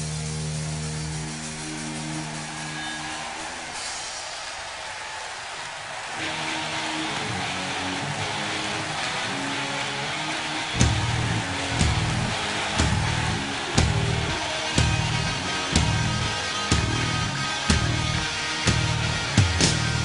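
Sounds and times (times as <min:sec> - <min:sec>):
heavy rock band playing live: 0:06.2 - 0:20.0
sustained guitar notes: 0:06.2 - 0:20.0.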